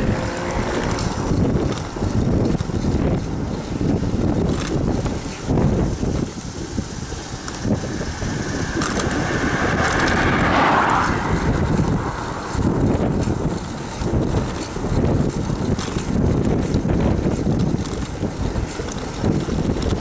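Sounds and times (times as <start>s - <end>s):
tyres rumbling on asphalt: 0.0s - 20.0s
wind buffeting microphone: 0.0s - 20.0s.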